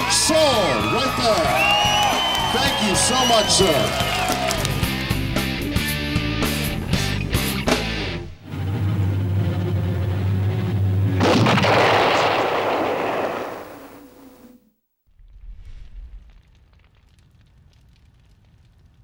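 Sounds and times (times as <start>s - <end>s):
low drone: 8.4s - 14.5s
loud explosion boom: 11.2s - 14.2s.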